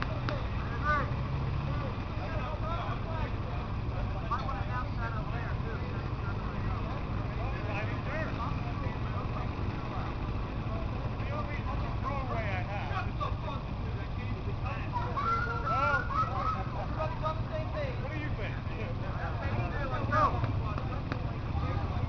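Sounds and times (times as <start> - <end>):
indistinct voices talking: 0.0 - 22.0.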